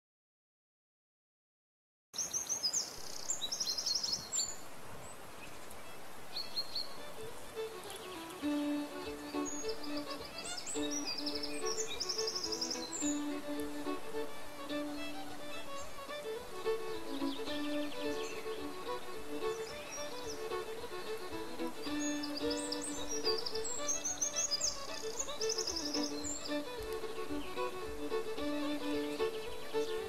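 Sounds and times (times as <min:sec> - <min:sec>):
birds chirping and trilling: 0:06.3 - 0:30.0.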